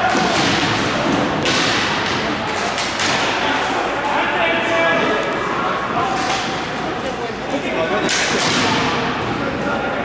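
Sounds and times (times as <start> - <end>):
sticks and ball hitting plastic court: 0.0 - 4.2, 8.0 - 9.0.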